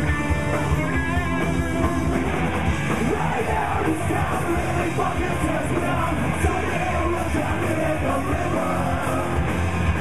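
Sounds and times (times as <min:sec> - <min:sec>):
bass guitar: 0:00.0 - 0:10.0
distorted electric guitar: 0:00.0 - 0:10.0
drums: 0:00.0 - 0:10.0
shouted lead vocal: 0:02.8 - 0:10.0.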